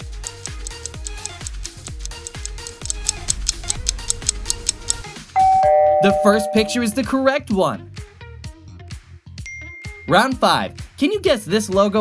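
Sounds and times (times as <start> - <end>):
countdown timer ticking: 0.2 - 7.2.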